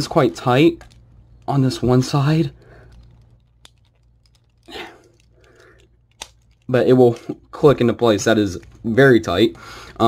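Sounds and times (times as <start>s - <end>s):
plastic parts clicking: 0.6s - 7.4s.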